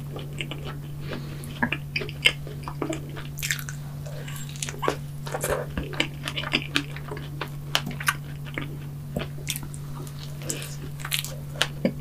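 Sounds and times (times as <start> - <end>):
chewing soft donut: 0.0 - 12.0
steady low hum: 0.0 - 12.0.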